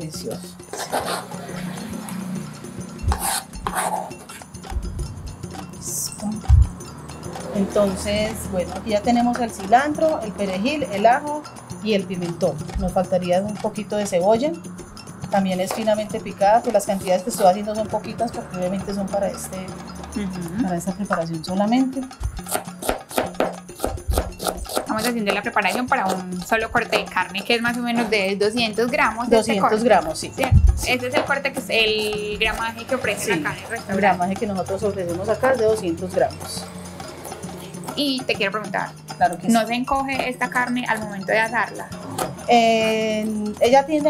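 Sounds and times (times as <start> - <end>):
knife chopping on cutting board: 22.4 - 26.2, 42.1 - 42.3.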